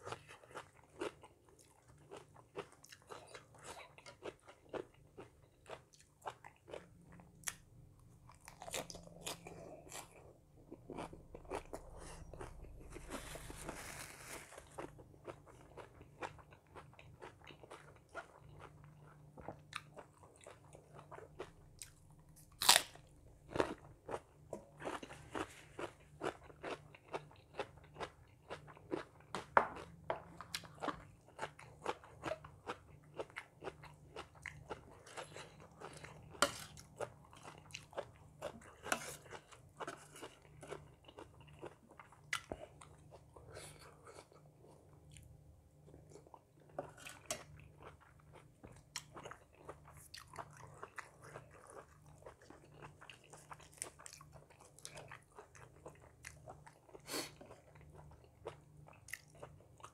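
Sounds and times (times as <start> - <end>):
crunching of raw vegetables: 21.4 - 41.8.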